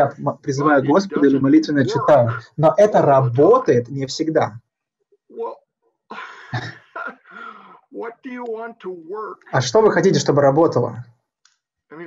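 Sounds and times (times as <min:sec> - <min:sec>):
person clearing throat: 0:00.7 - 0:03.8, 0:06.1 - 0:07.5
person coughing: 0:00.8 - 0:03.6, 0:06.2 - 0:07.6.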